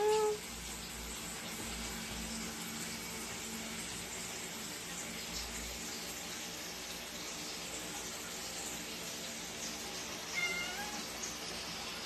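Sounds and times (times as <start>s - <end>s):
cat meowing: 10.3s - 11.1s.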